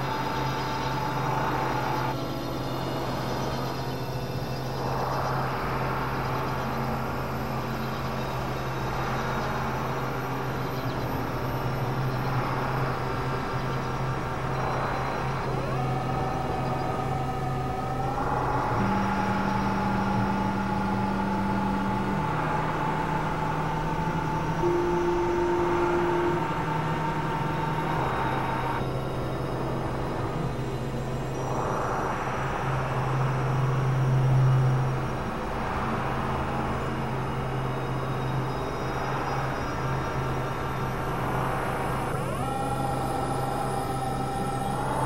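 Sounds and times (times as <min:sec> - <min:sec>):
synthesizer drone: 0:00.0 - 0:45.0
higher synth tone gliding: 0:14.6 - 0:29.8.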